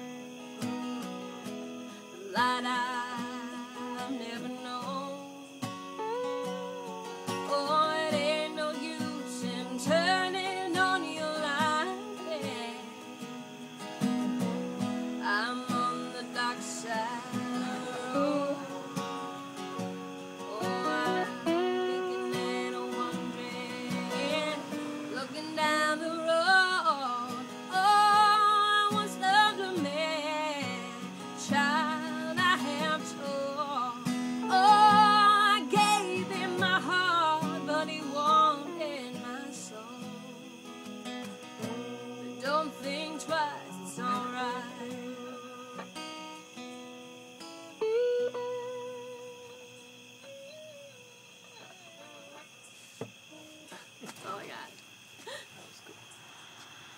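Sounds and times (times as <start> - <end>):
strummed acoustic guitar chords: 0.0 - 50.3
slide guitar gliding notes: 0.0 - 53.8.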